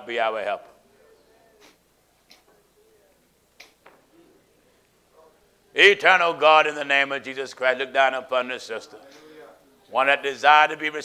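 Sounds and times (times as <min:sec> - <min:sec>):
faint sharp clicks: 0:01.6 - 0:02.5, 0:03.5 - 0:04.0.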